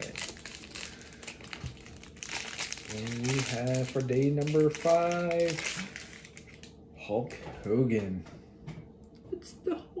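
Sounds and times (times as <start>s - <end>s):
plastic wrapping crinkling: 0.0s - 7.4s.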